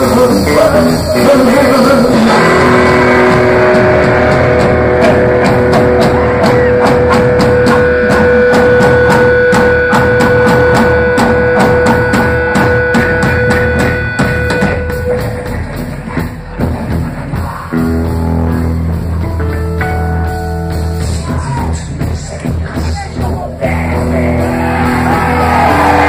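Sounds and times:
drums fast beat: 0.0 - 26.0
electric guitar sustained note: 1.9 - 15.5.

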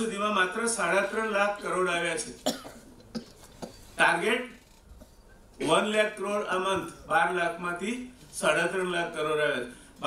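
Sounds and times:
person coughing: 2.4 - 3.4.

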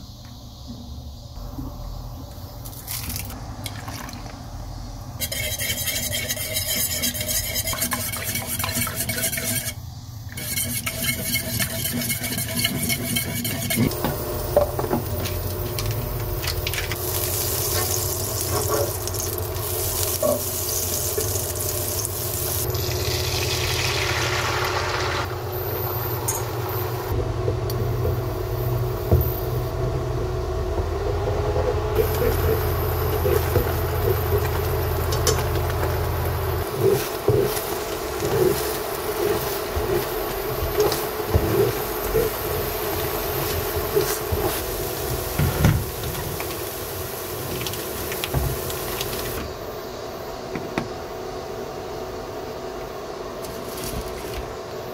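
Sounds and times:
spatula scraping pan: 5.2 - 13.9, 36.6 - 45.3
eggs cooking in frying pan: 10.5 - 26.0, 32.0 - 49.4
steady low hum: 25.2 - 54.9.

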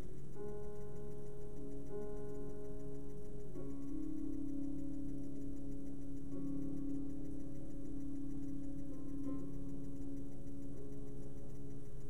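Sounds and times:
calm music of slow chords: 0.0 - 12.0
faint ticking pulse: 0.0 - 12.0.

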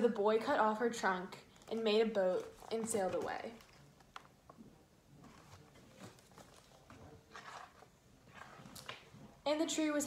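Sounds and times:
book rustling and clicking: 1.5 - 4.6, 5.2 - 9.2.

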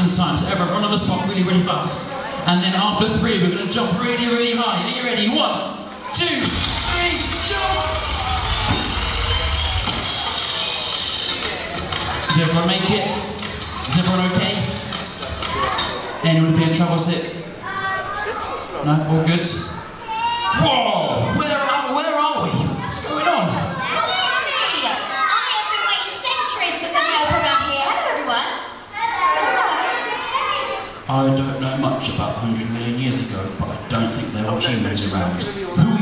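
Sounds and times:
children calling out and chattering: 1.1 - 2.9, 5.8 - 16.3, 17.4 - 31.1
loud noisy wash: 6.2 - 16.7
music over pa system: 6.2 - 17.0
deep low hum: 6.4 - 12.4
swooping sounds: 6.4 - 16.2.

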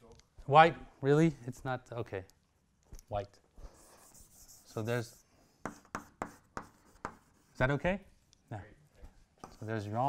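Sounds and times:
chalk writing on a blackboard: 3.6 - 7.8, 9.4 - 10.0.

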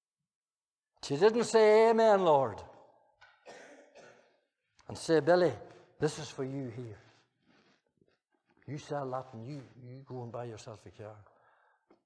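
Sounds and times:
man breathing faintly: 7.1 - 8.4, 11.3 - 11.9.

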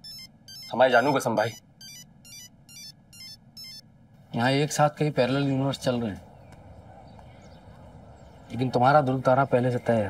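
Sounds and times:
electronic ringtone melody: 0.0 - 3.9.

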